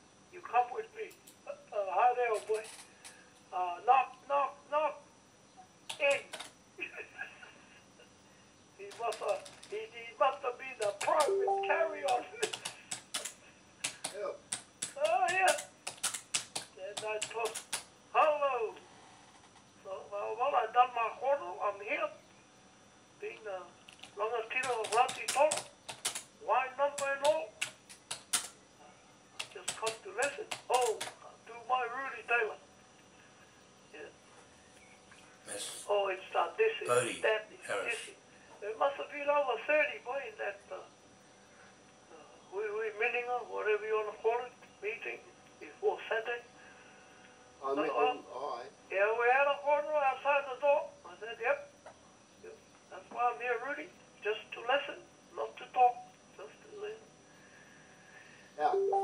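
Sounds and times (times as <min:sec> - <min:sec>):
voice talking over telephone: 0:10.8 - 0:12.6, 0:26.5 - 0:27.5, 0:35.5 - 0:38.1, 0:58.6 - 0:59.0
computer keyboard key clicks: 0:12.1 - 0:17.9, 0:23.9 - 0:26.3, 0:27.0 - 0:28.6, 0:29.4 - 0:31.1.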